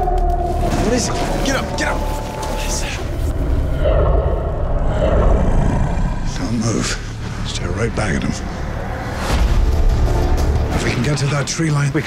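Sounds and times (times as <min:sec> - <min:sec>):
deep rumble: 0:00.0 - 0:11.4.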